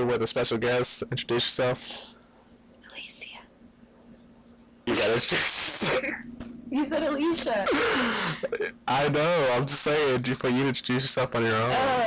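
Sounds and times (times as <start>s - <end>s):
faint whisper: 1.1s - 2.2s, 2.9s - 3.5s, 4.9s - 6.6s, 7.7s - 8.7s.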